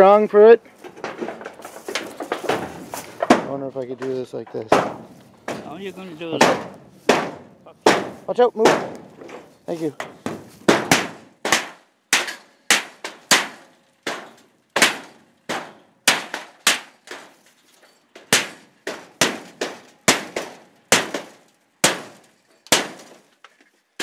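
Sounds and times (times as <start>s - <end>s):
blows clanging on sheet metal: 0.7s - 23.4s.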